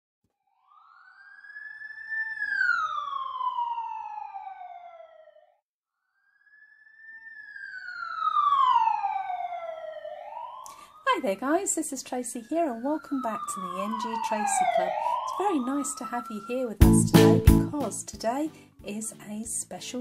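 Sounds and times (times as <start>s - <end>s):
siren wailing: 0.4s - 17.7s.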